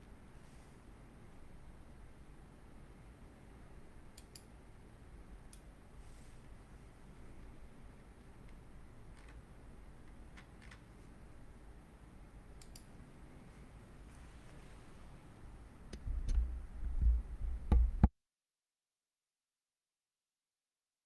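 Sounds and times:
low room hum: 0.0s - 18.1s
faint clicks: 12.6s - 12.9s.

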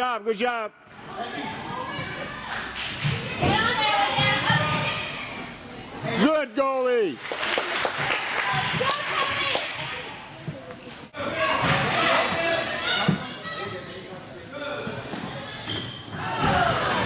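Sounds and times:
voices of players and spectators: 0.0s - 17.0s.

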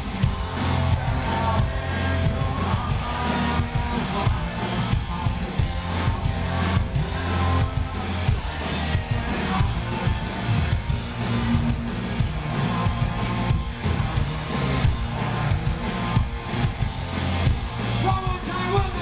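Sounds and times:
punk rock band playing: 0.0s - 19.0s.

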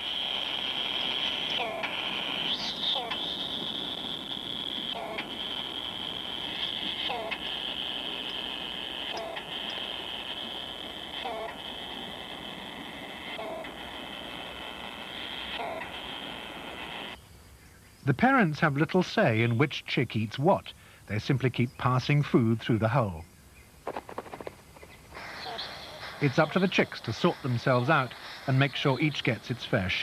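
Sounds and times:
high-pitched drone: 0.0s - 17.2s, 25.1s - 30.0s
bird chicks calling: 0.0s - 18.1s, 23.2s - 30.0s.

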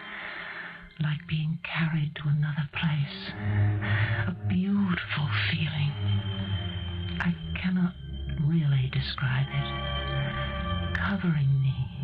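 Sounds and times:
person whispering and speaking: 0.9s - 6.1s, 7.2s - 9.8s, 10.9s - 12.0s.

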